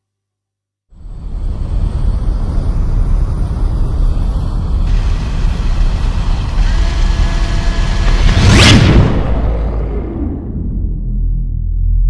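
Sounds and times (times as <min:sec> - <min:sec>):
deep steady rumble: 0:00.9 - 0:12.0.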